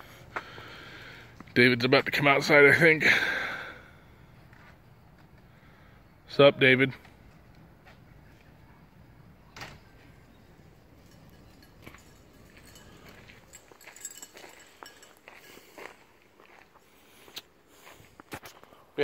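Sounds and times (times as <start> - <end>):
footsteps and scuffs: 4.5 - 5.4, 11.9 - 18.8.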